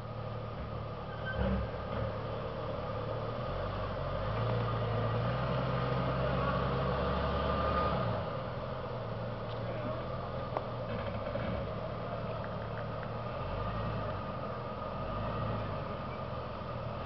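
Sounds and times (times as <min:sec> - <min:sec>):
suv engine crawling over boulders: 0:00.0 - 0:17.0.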